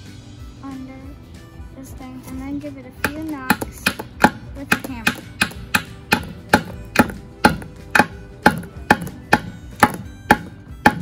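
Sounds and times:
hammer knocking wooden peg: 3.0 - 11.0.

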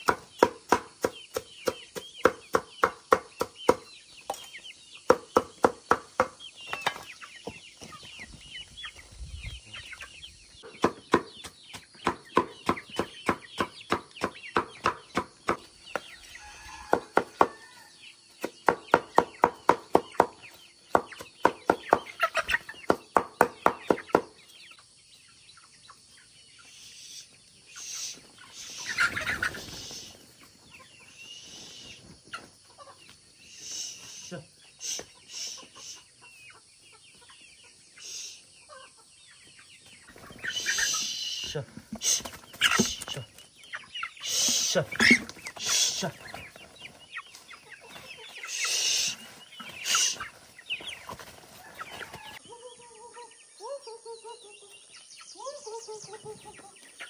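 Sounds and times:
chickens clucking: 0.0 - 57.0.

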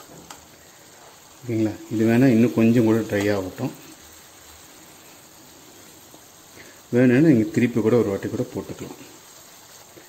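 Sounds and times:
gravy simmering in a pan: 0.0 - 10.0.

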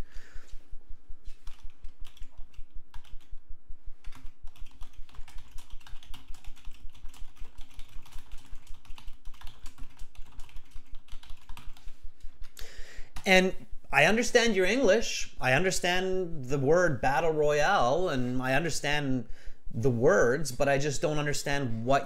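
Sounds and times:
typing on computer keyboard: 1.4 - 3.4, 4.0 - 12.5.

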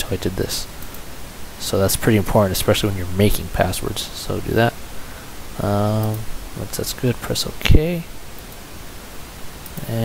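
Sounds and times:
recording hiss: 0.0 - 10.0
man's voice: 5.6 - 8.1.

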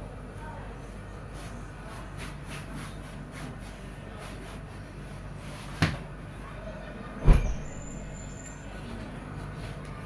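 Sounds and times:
soft thump of bedding: 7.2 - 7.7.

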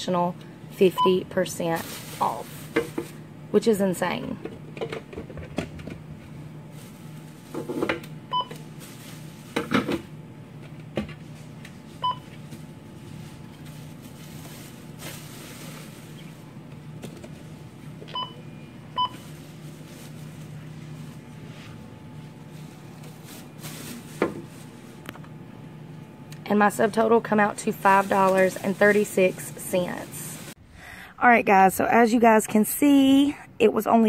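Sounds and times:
items clattering and rustling: 1.7 - 3.2, 4.4 - 6.1, 6.7 - 18.2, 22.4 - 25.3, 27.5 - 30.6
barcode scanner beeps: 18.1 - 19.2.

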